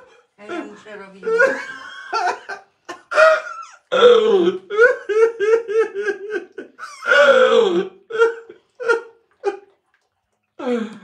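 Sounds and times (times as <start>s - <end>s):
man laughing: 4.7s - 7.0s.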